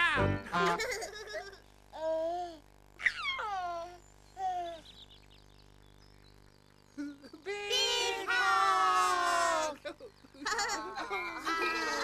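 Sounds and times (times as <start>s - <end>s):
baby cooing: 2.0s - 4.9s
faint high chirps: 3.0s - 9.2s.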